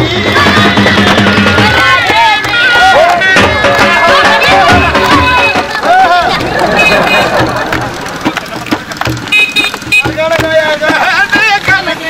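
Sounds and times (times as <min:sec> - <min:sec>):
crowd voices: 0:00.0 - 0:12.0
hand drumming on plastic cooler: 0:06.3 - 0:12.0.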